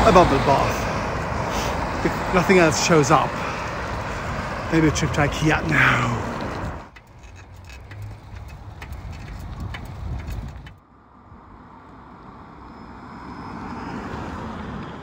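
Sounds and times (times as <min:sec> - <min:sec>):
car approaching: 0:00.0 - 0:15.0
bicycle riding over snow: 0:00.8 - 0:10.8
bicycle rattling clicks: 0:06.3 - 0:10.8.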